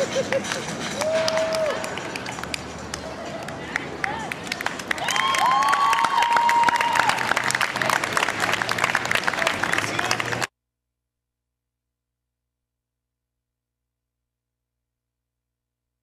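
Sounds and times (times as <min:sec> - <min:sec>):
person laughing: 0:00.0 - 0:00.7
crowd clapping: 0:00.4 - 0:10.5.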